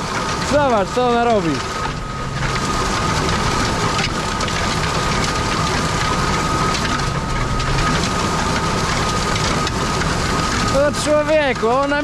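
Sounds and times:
constant high whine: 0.0s - 12.0s
harrow rumbling through soil: 0.0s - 12.0s
tractor engine running: 0.0s - 12.0s.

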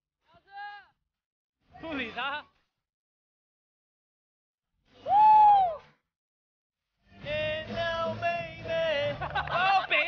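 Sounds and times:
person whooping: 5.0s - 5.9s.

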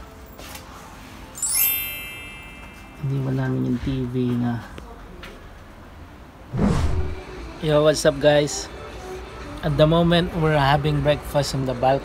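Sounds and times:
rushing whoosh: 6.5s - 7.4s.

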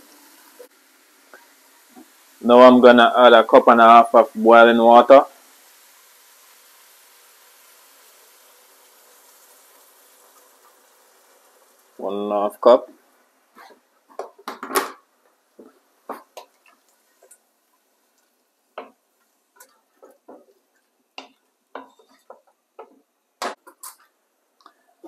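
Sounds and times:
wooden spoon stirring stew pot: 12.9s - 24.9s.

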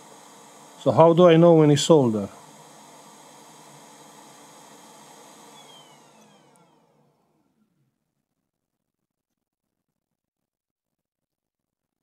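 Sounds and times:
electric blower fan spinning down: 0.0s - 8.2s.

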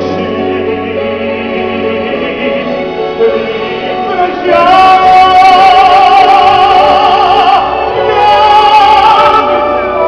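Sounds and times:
musical accompaniment: 0.0s - 10.0s.

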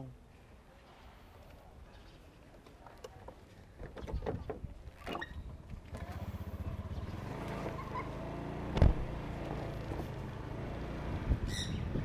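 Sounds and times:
scooter engine running: 5.9s - 11.5s.

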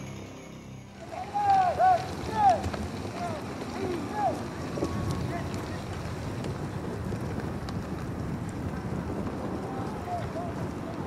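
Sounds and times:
strong wind buffeting microphone: 1.8s - 11.0s.

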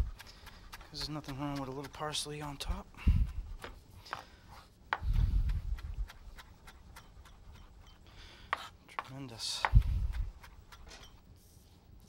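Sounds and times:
knife chopping on cutting board: 0.0s - 2.8s, 4.9s - 7.8s, 8.5s - 11.1s.

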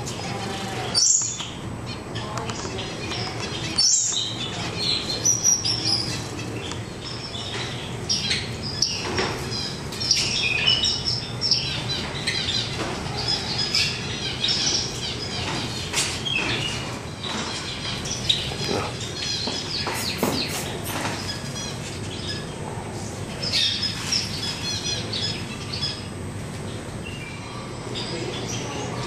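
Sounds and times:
small birds chirping: 0.0s - 29.0s.

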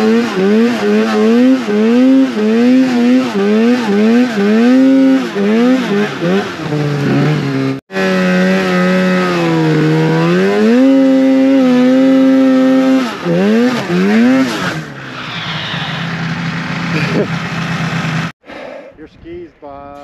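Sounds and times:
snowmobile engine revving and idling: 0.0s - 18.4s.

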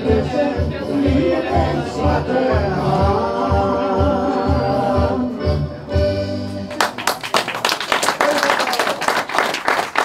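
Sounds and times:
audience applauding: 6.7s - 10.0s.

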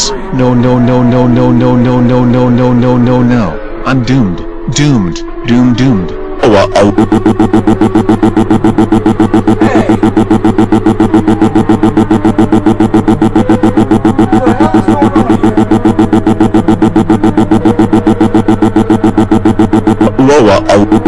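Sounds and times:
throbbing synthesizer chord: 0.0s - 21.0s.

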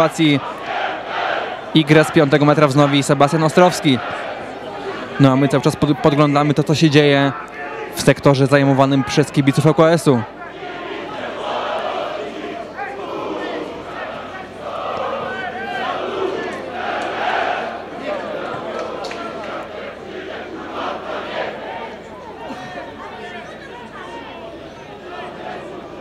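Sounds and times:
crowd shouting together: 0.0s - 26.0s.

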